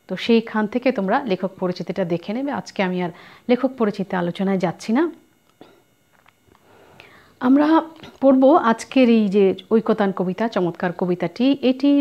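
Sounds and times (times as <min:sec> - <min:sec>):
woman speaking: 0:00.1 - 0:05.3, 0:07.4 - 0:12.0.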